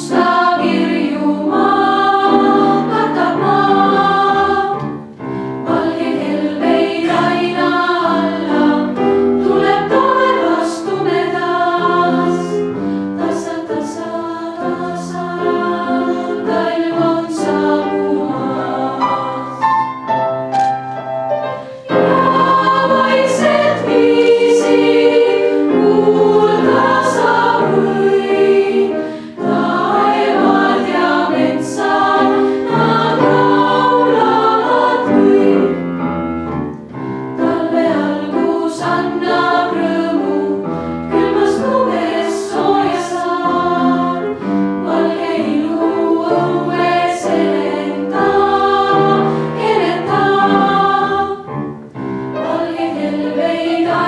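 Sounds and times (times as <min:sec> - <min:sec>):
girls' choir singing: 0:00.0 - 0:20.0, 0:21.7 - 0:36.1, 0:37.4 - 0:51.6, 0:52.3 - 0:54.0.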